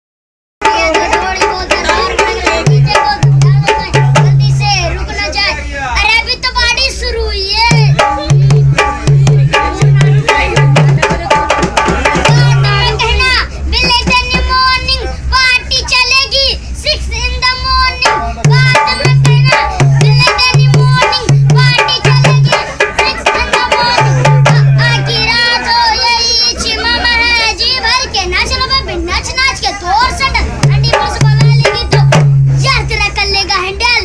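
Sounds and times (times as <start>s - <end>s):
deep booming drum stroke: 0.6s - 4.8s, 7.6s - 14.6s, 18.0s - 25.3s, 30.5s - 33.0s
boy singing in high voice: 0.6s - 34.0s.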